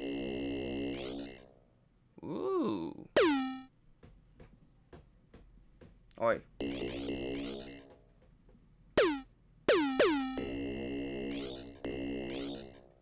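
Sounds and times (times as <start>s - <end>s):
synthesizer chords: 6.6s - 8.0s, 9.0s - 13.0s.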